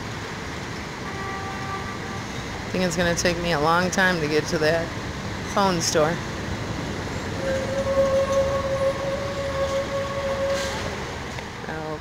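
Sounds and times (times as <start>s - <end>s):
traffic noise: 0.0s - 12.0s
steady tone: 7.1s - 11.3s.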